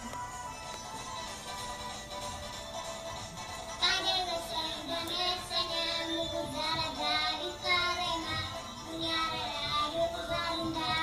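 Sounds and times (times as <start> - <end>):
backing music: 0.0 - 11.0
boy singing into a microphone: 3.8 - 11.0.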